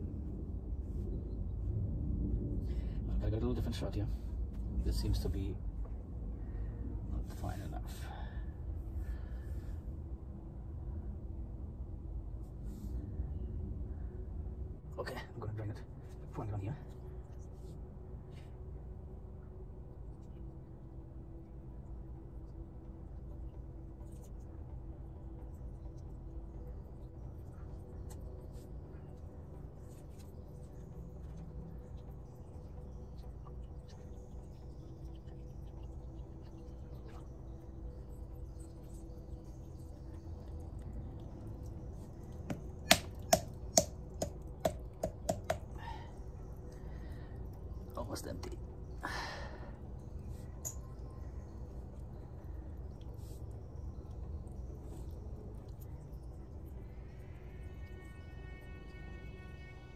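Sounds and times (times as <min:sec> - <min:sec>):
sharp taps on glass jar: 0:42.5 - 0:45.8.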